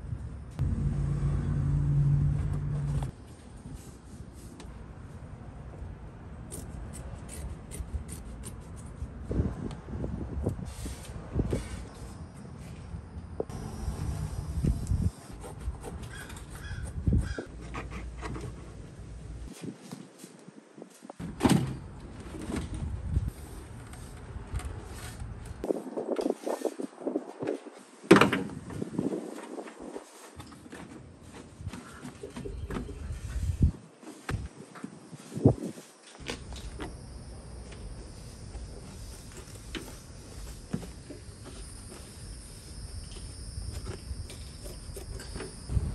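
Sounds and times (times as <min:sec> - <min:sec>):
low motor hum: 0:00.6 - 0:03.1, 0:13.5 - 0:15.1.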